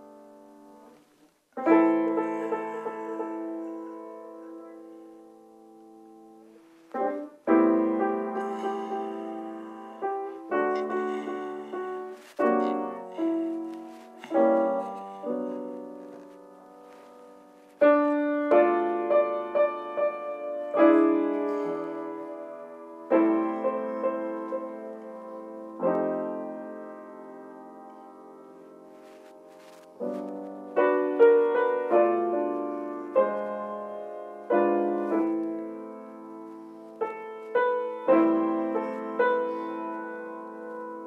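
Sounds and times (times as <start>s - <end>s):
grand piano chords: 0.0s - 41.0s.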